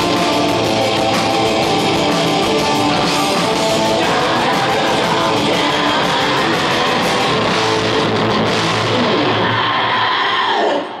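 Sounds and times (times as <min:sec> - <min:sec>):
guitars ringing out: 0:00.0 - 0:10.0
high vocal shriek: 0:08.9 - 0:11.0.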